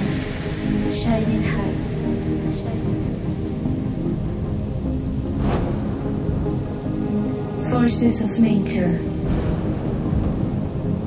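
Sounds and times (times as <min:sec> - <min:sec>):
sustained synth pad: 0:00.0 - 0:11.0
thunder and rain rumble: 0:09.2 - 0:11.0.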